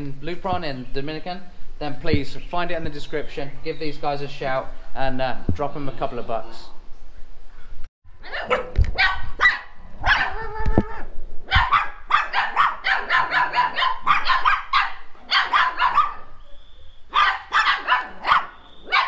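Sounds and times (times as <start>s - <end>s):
puppies barking and yapping: 8.1s - 19.0s.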